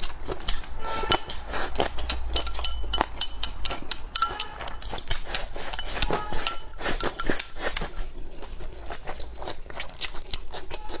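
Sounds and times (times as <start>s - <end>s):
person chewing crunchy food: 0.0s - 11.0s.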